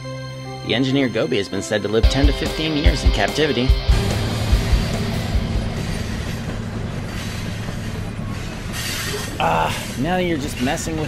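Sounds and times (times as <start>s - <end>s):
train rolling on rails: 2.0s - 11.0s
low drone: 2.2s - 10.6s.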